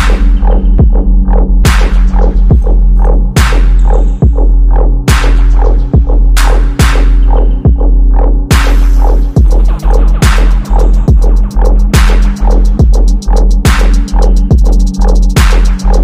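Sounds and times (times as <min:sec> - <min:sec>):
deep sub bass: 0:00.0 - 0:16.0
hi-hat ticks: 0:09.3 - 0:16.0.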